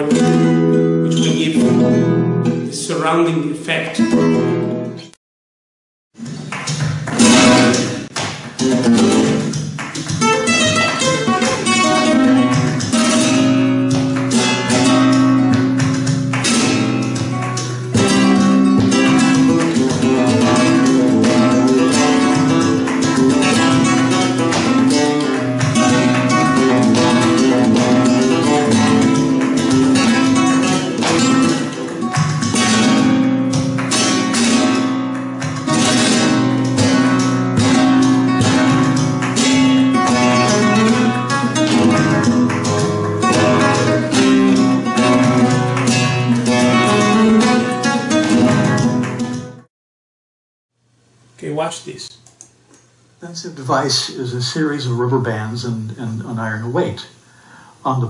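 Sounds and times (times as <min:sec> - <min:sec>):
flamenco guitar playing: 0:00.0 - 0:05.1, 0:06.1 - 0:49.7.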